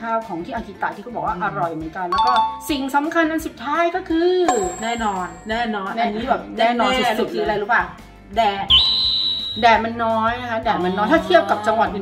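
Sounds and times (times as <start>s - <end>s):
high whistle tone: 8.7s - 9.8s.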